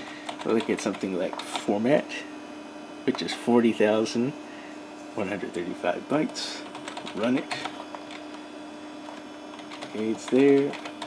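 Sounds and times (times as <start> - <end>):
computer hum: 0.0 - 11.0
keyboard keystrokes: 9.1 - 11.0.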